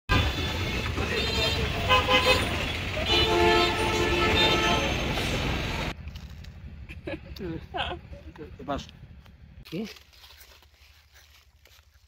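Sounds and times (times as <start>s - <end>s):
vehicle horns honking: 0.1s - 5.9s
street traffic engines: 0.1s - 9.7s.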